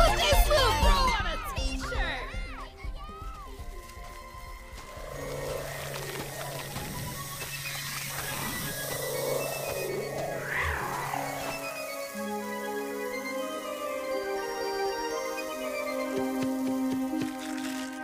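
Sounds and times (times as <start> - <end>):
background music with low note: 0.0 - 18.0.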